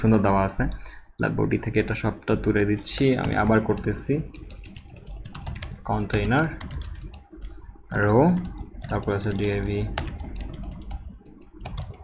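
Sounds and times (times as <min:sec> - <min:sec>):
computer keyboard typing: 0:02.7 - 0:12.0.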